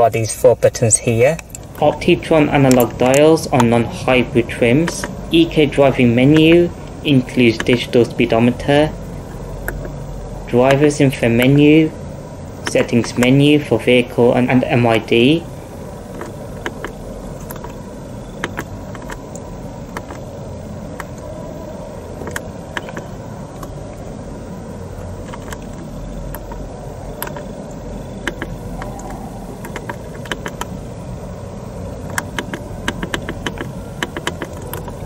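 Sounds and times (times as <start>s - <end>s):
low background noise: 0.0s - 35.0s
buttons clicking: 2.6s - 3.8s, 4.8s - 5.2s, 7.5s - 8.2s, 28.2s - 30.7s, 32.1s - 35.0s.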